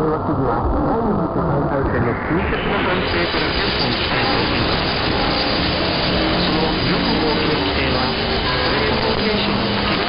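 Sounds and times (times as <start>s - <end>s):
radio static and hiss: 0.0s - 10.0s
faint radio interference whistles: 1.8s - 10.0s.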